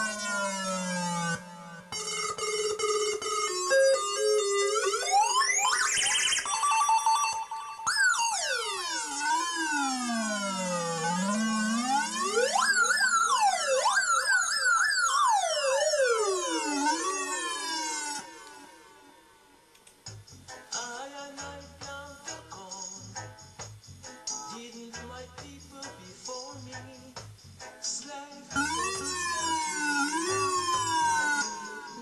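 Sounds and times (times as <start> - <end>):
electronic device notes: 0.0 - 19.2
siren-like electronic pitch sweeps: 0.0 - 19.3, 28.6 - 32.0.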